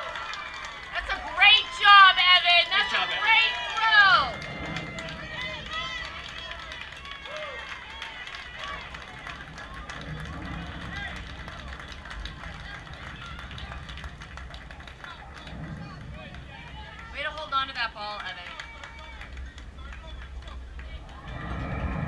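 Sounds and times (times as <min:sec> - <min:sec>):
wind rumble on microphone: 0:00.8 - 0:22.0.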